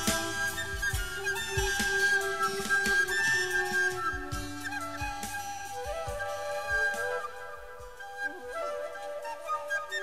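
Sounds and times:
steady drum beat: 0:00.0 - 0:05.3
bass: 0:00.0 - 0:09.8.

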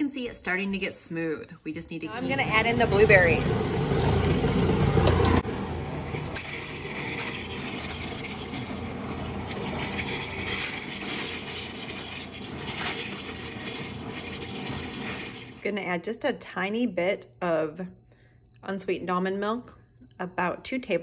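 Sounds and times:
food processor motor blending: 0:02.2 - 0:15.6.

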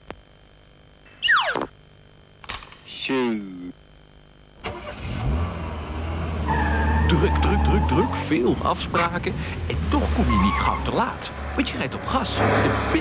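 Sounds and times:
cartoon falling pitch slides: 0:01.1 - 0:01.7
car engine starting and running: 0:04.6 - 0:13.0.

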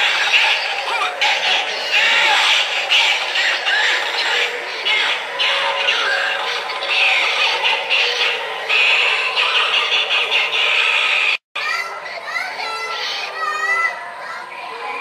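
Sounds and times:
electronically treated voice: 0:00.0 - 0:11.4
gliding voice-like sounds: 0:00.0 - 0:11.4.

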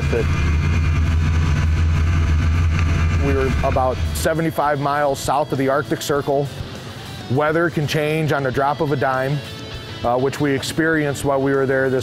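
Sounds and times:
snowmobile engine drone: 0:00.0 - 0:06.5.

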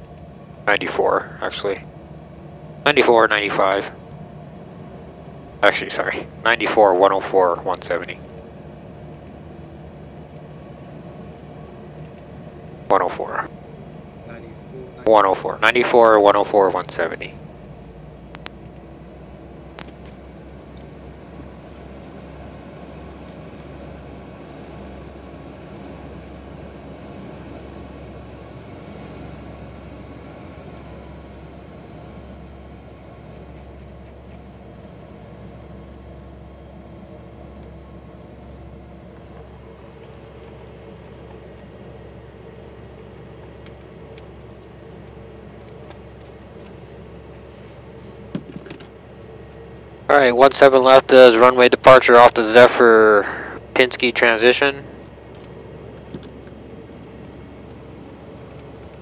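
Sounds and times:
faint steady tones: 0:00.0 - 0:59.0
jet engine idling hum: 0:00.0 - 0:59.0.

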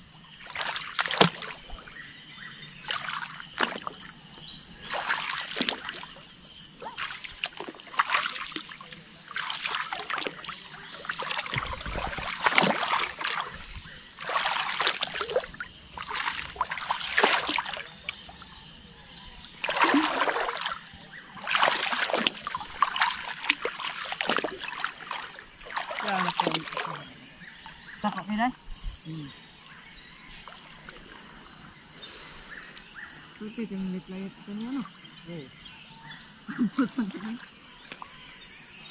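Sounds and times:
legs wading through water: 0:00.3 - 0:28.2.

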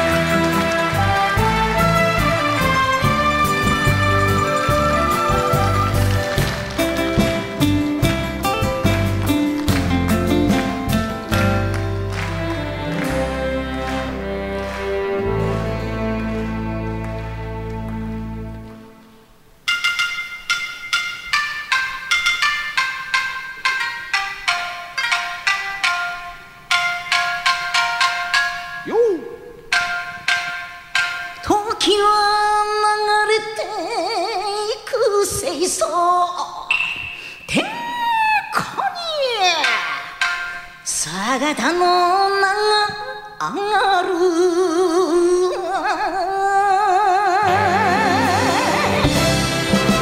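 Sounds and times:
drum hits: 0:00.0 - 0:12.2
live band playing held notes: 0:00.0 - 0:21.0, 0:47.2 - 0:50.0
bell-like chime tones: 0:36.7 - 0:37.6.

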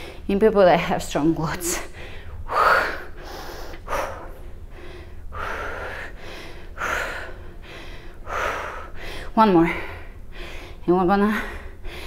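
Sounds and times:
woman breathing hard: 0:00.0 - 0:00.3, 0:01.8 - 0:12.0.

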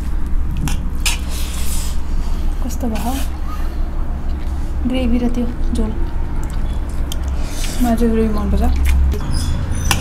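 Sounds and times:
steady low hum: 0:00.0 - 0:09.8
wet squishing of food mixed by hand: 0:00.0 - 0:10.0.

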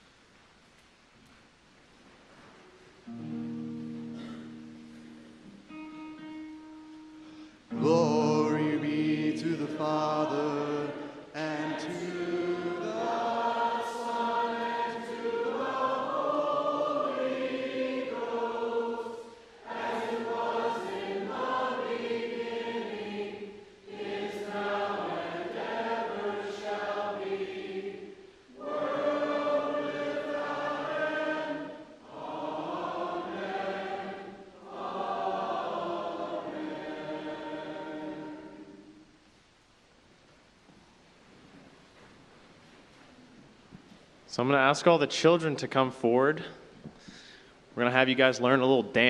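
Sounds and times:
singers breathing: 0:07.1 - 0:07.7, 0:11.0 - 0:11.3, 0:46.9 - 0:47.7
congregation singing: 0:07.7 - 0:39.2.

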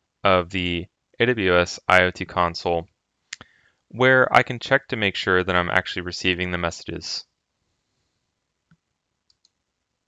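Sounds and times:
computer mouse clicks: 0:08.7 - 0:09.6.

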